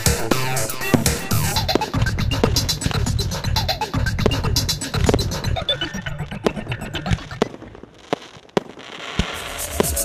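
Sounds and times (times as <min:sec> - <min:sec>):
fireworks bangs: 0:00.0 - 0:05.8, 0:06.4 - 0:10.0.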